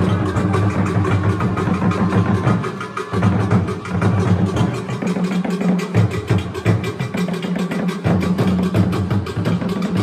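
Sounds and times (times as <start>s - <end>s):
fast dense drumming: 0.0s - 10.0s.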